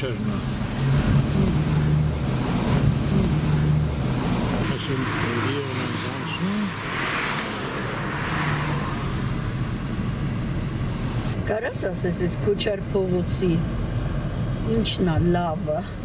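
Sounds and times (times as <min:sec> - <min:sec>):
car engine drone: 0:00.0 - 0:16.0
tyre and road noise: 0:00.0 - 0:16.0.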